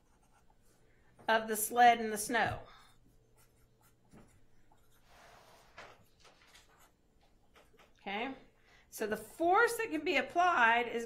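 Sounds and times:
marker scratching on paper: 0.0s - 0.8s, 2.4s - 5.8s.

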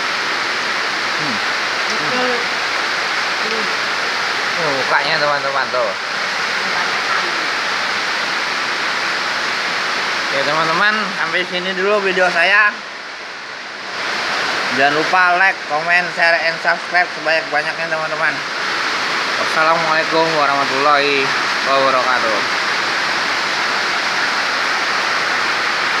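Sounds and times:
rain falling: 0.0s - 26.0s.

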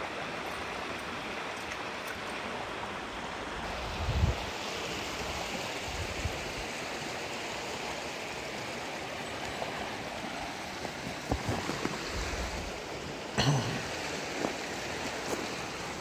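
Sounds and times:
creek running over rocks: 0.0s - 16.0s.

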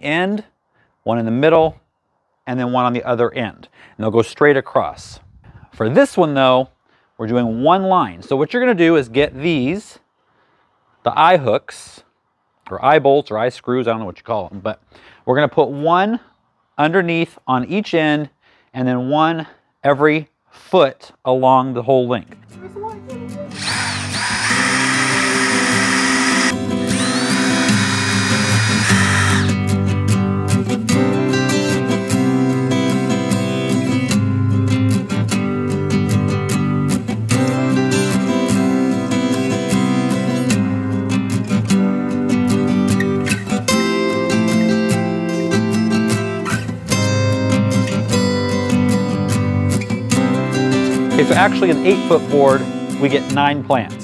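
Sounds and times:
acoustic guitar music: 22.4s - 23.6s, 24.5s - 54.0s
cordless drill boring into wood: 23.5s - 29.6s.

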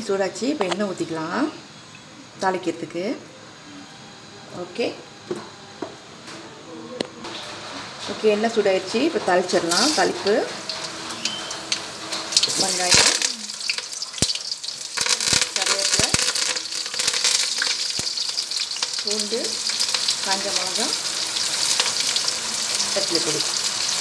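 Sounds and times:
oil sizzling and spattering: 9.5s - 24.0s.

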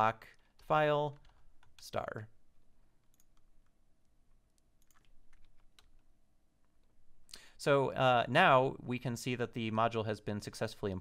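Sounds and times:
faint keyboard keystrokes: 4.5s - 7.0s.

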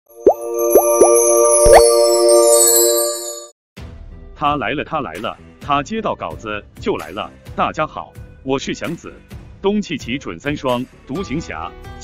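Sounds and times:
held synth chord: 0.1s - 3.5s
rising bloop pops: 0.2s - 2.2s
upward synth sweep: 0.2s - 3.4s.

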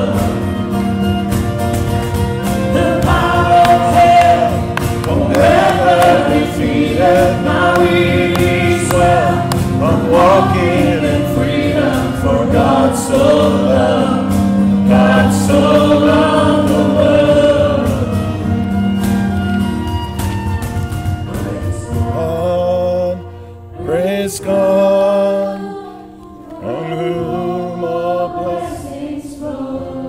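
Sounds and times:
voices singing together: 0.0s - 1.2s, 2.4s - 18.5s, 23.8s - 30.0s
band with acoustic guitar: 0.0s - 25.6s.

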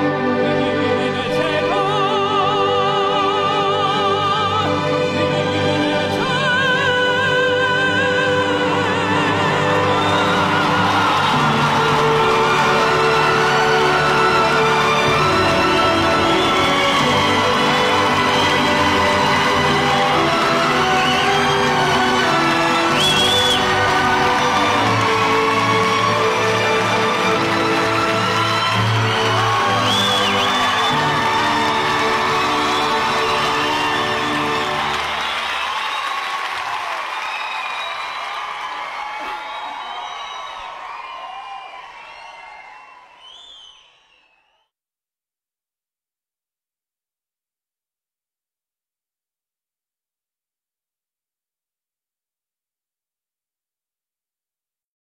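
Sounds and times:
orchestral music: 0.0s - 37.0s
audience cheering and applauding: 7.8s - 44.6s.

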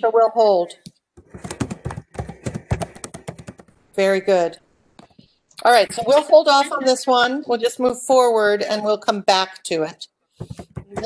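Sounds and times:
computer keyboard keystrokes: 1.2s - 3.7s.

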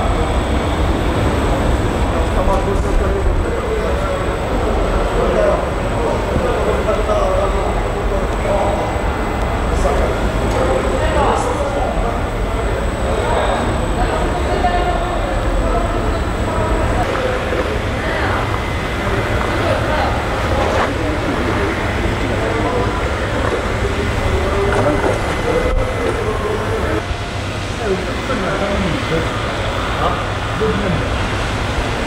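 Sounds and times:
indistinct voices talking: 0.0s - 32.0s.

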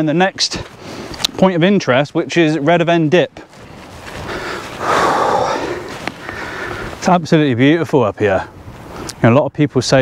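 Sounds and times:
person exhaling close to microphone: 4.3s - 6.9s.

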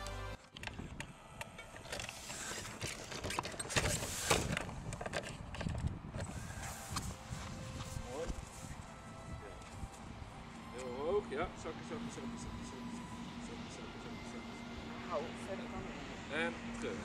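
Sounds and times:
background music: 0.0s - 0.4s, 7.1s - 17.0s
wind rumbling on microphone: 3.8s - 10.3s.

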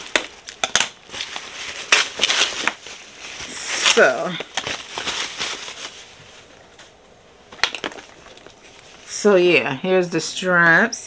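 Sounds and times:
wrapping crinkling and rustling: 0.0s - 9.3s.

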